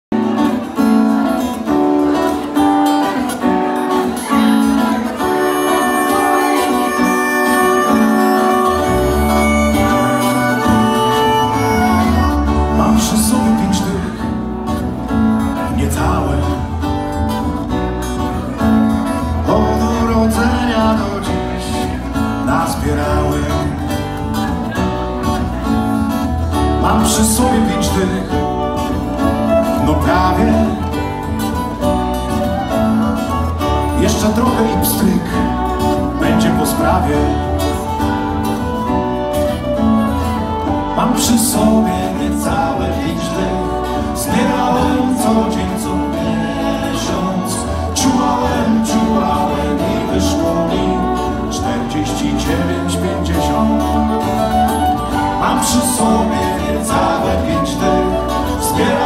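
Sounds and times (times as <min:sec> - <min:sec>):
acoustic guitar: 0:00.0 - 0:59.0
fiddle: 0:00.2 - 0:15.6
low bass line: 0:05.4 - 0:59.0.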